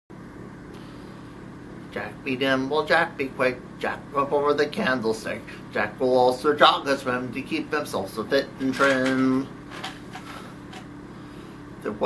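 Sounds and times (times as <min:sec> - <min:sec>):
background hum: 0:00.2 - 0:12.0.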